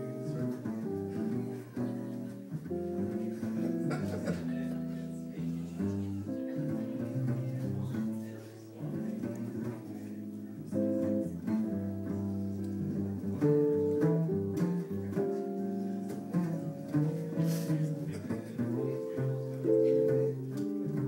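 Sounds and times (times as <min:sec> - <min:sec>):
double bass line: 0:00.0 - 0:21.0
plucked guitar notes and chords: 0:00.0 - 0:21.0.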